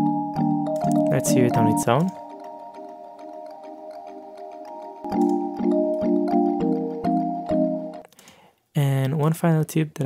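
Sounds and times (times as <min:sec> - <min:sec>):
echoed kalimba tones: 0:00.0 - 0:08.0
plucked kalimba notes: 0:00.0 - 0:08.0.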